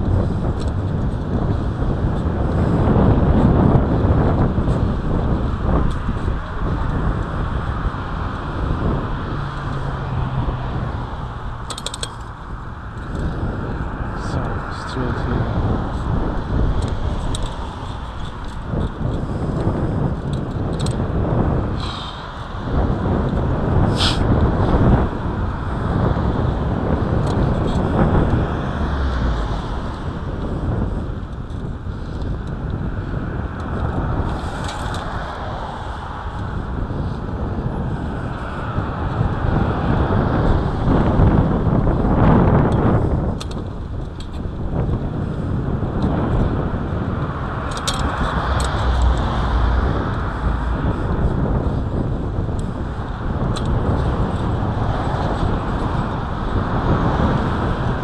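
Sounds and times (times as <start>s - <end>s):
skateboard wheels rolling on concrete: 0.0s - 58.0s.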